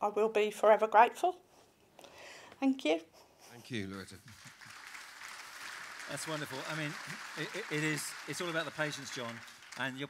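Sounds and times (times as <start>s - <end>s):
audience applause: 4.1s - 10.0s.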